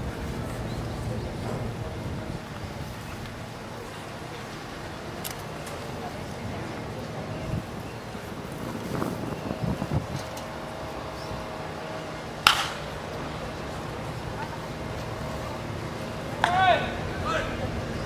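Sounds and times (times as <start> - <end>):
faint voices: 0.0 - 18.0
outdoor background noise: 0.0 - 18.0
wooden bat hitting baseball: 12.4 - 12.9.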